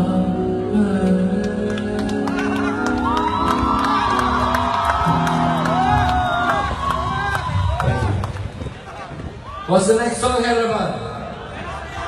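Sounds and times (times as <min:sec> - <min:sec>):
crowd singing and cheering: 0:00.0 - 0:09.5.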